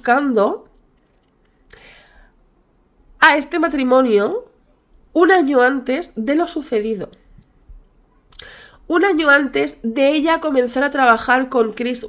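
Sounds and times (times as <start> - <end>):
woman speaking: 0.0 - 0.8, 3.2 - 7.3, 8.9 - 12.0
woman breathing softly: 1.7 - 2.4, 8.4 - 8.8.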